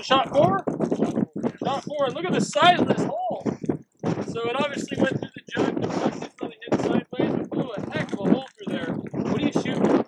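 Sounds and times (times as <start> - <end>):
man talking: 0.0 - 3.6, 4.2 - 9.9.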